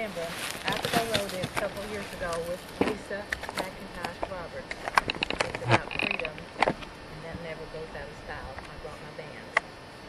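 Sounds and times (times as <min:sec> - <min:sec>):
faint voices: 0:00.0 - 0:09.6.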